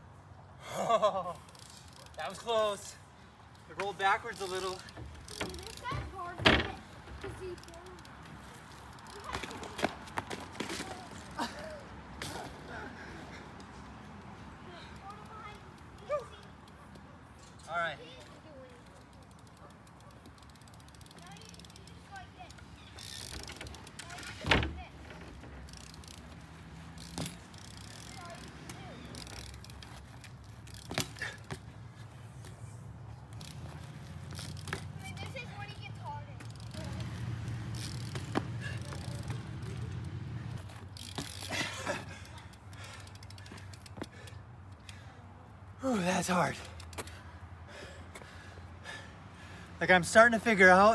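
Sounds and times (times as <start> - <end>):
bike rolling on asphalt: 0.0 - 50.9
bike landing knocks: 4.7 - 7.6, 23.0 - 31.8, 36.4 - 41.5
rider grunting and breathing: 11.4 - 13.6, 31.0 - 31.7, 38.4 - 39.2, 41.4 - 46.0, 46.6 - 49.8.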